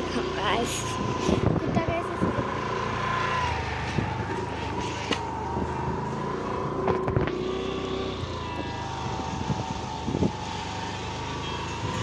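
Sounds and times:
road vehicle running: 0.0s - 12.0s.

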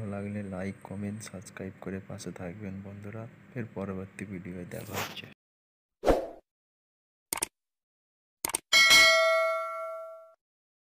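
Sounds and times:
notification bell ding: 8.8s - 10.4s.

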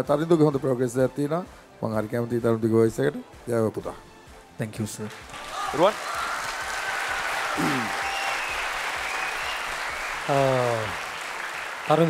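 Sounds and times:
audience applauding: 5.0s - 12.0s.

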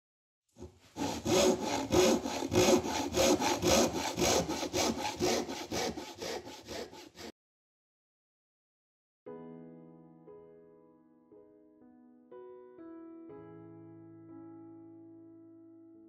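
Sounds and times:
hand saw cutting wood: 0.6s - 7.3s.

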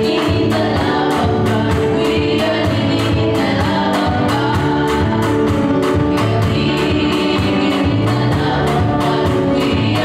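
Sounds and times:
accompaniment with steady beat: 0.0s - 10.0s
girls singing gospel song: 0.0s - 10.0s.

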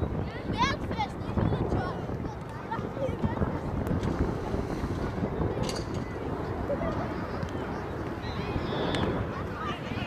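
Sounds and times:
distant voices: 0.0s - 10.0s
wind buffeting microphone: 0.0s - 10.0s.

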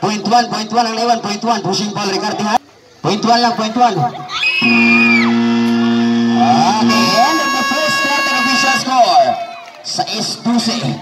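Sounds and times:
crowd shouting and whooping: 4.2s - 9.8s
basketball horn: 4.6s - 9.0s.

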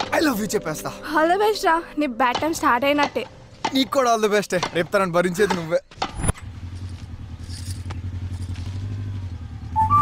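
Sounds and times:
flute music: 9.7s - 10.0s.

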